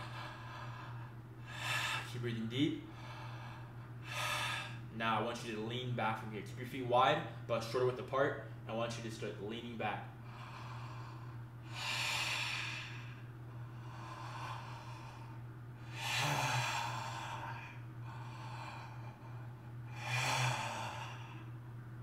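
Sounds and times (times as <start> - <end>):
man breathing deeply: 0.0 - 2.2, 2.8 - 4.9, 10.1 - 21.6
low hum: 0.0 - 22.0.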